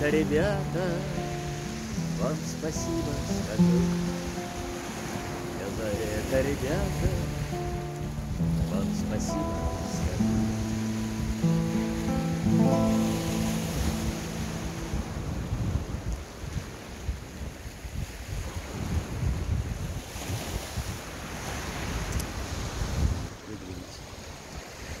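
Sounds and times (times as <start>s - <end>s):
classical guitar chords: 0.0s - 16.2s
surf washing against rocks: 0.0s - 25.0s
wind on microphone: 0.0s - 25.0s.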